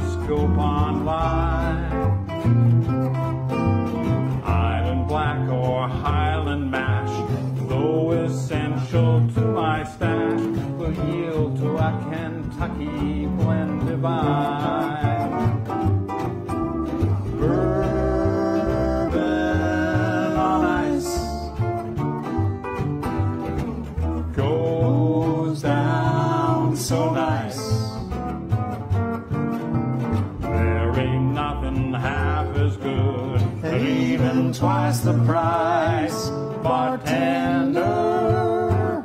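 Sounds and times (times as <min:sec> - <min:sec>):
sliding lap steel guitar melody: 0:00.0 - 0:05.3, 0:10.1 - 0:24.6, 0:27.8 - 0:31.2
country band instrumental: 0:00.0 - 0:39.0
upright bass line: 0:00.0 - 0:39.0.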